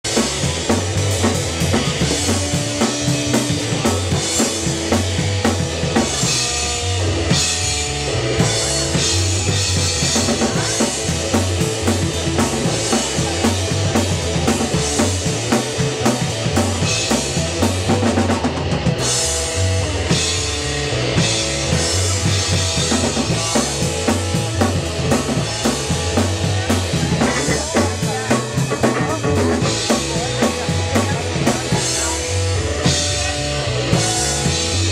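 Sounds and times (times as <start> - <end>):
bass drum and snare beat: 0.0 - 34.9
live band playing loud music: 0.0 - 34.9
person singing: 27.2 - 32.2.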